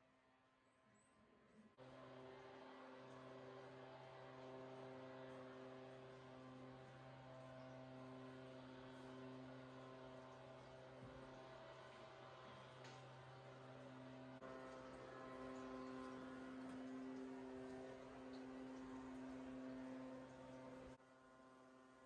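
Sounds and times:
faint steady low hum: 1.8s - 22.0s.

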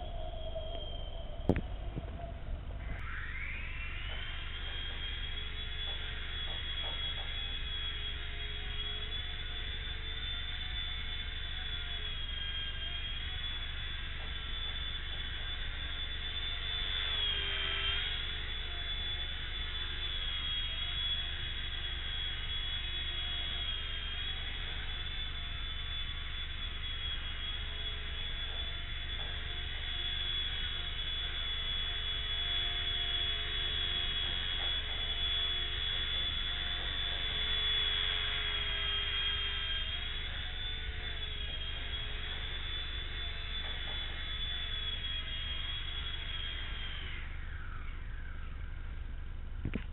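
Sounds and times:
low steady hum: 0.0s - 19.6s
rc helicopter motor whine: 0.0s - 49.9s.

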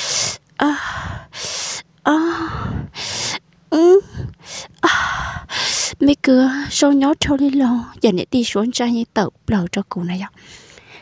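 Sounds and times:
person gasping for breath: 0.0s - 5.9s.

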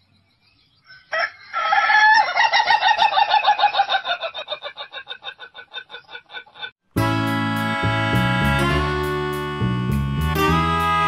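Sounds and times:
rooster crowing: 0.9s - 4.7s.

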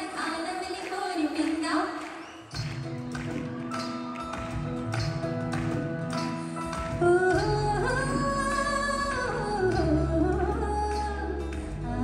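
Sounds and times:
woman singing: 6.7s - 12.0s.

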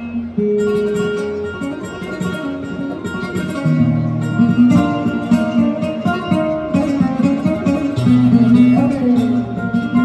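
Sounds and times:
flamenco guitar solo: 0.0s - 10.0s.

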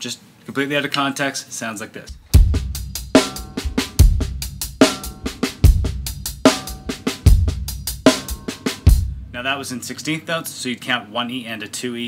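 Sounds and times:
snare drum strokes: 2.1s - 9.4s
bass drum hits: 2.1s - 9.5s
hi-hat strokes: 2.1s - 9.5s.

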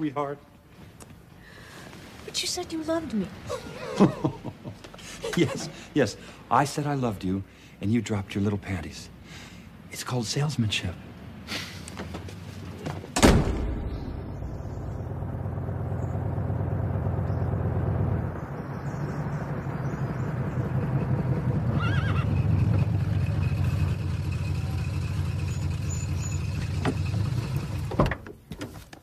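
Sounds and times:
door slamming: 13.1s - 14.0s, 27.8s - 28.3s
car engine running: 14.2s - 27.9s
horse whinnying: 21.7s - 22.6s.

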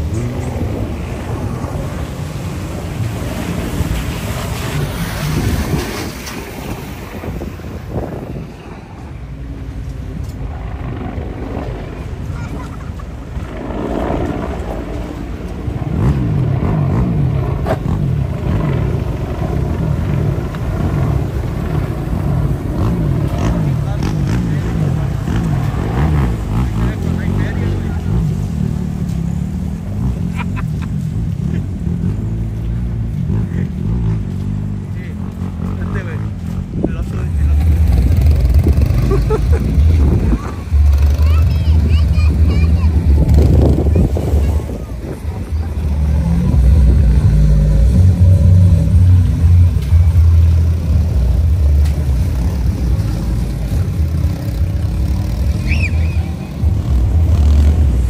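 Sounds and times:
vehicle engines rumbling: 0.0s - 58.0s.

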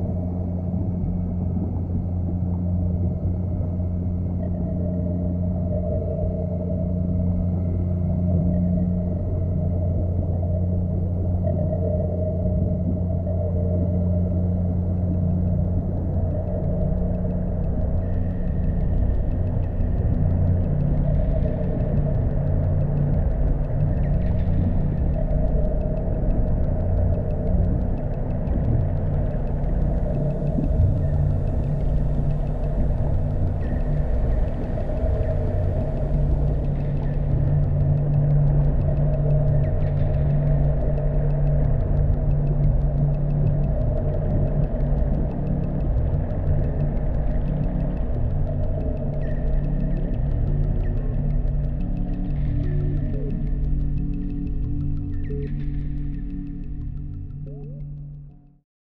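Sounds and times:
ambient drone with held tones: 0.0s - 58.6s.

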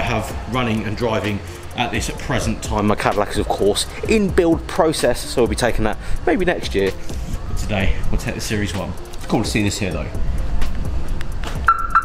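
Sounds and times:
background music: 0.0s - 12.0s
car alarm electronic beep: 11.6s - 12.0s.

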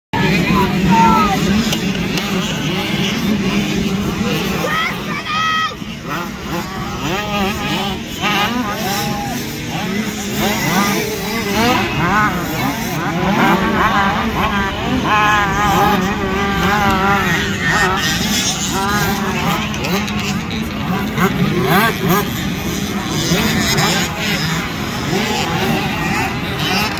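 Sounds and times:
motocross bikes revving: 0.2s - 26.9s.

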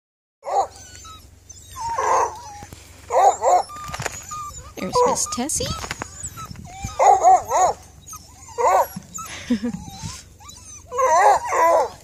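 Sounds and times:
dogs barking: 0.4s - 10.0s, 10.8s - 12.0s.

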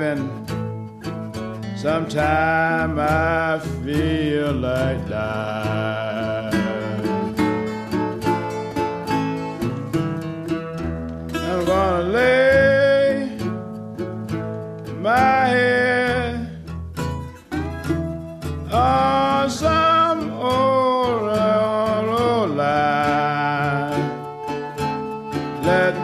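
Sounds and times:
man singing blues: 0.0s - 0.7s, 1.3s - 17.1s, 18.4s - 26.0s
acoustic guitar: 0.0s - 26.0s.

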